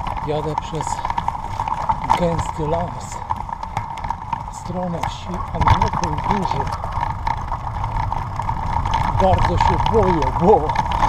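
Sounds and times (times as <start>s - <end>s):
tyres rumbling on dirt: 0.0s - 11.0s.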